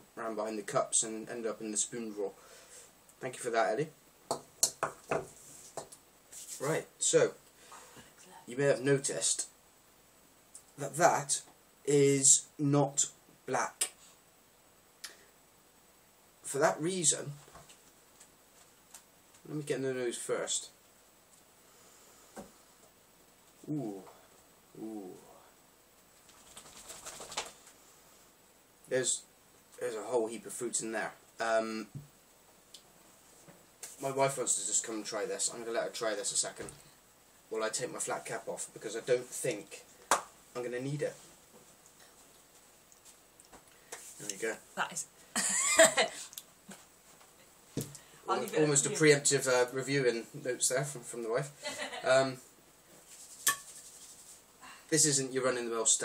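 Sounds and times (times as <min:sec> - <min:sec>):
man saying ooh: 0:23.6 - 0:24.1, 0:24.8 - 0:25.5.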